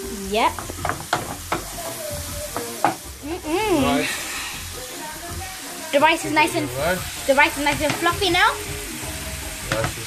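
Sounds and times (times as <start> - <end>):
vegetables sizzling in frying pan: 0.0 - 10.0
spoon knocking on pan: 0.5 - 3.1.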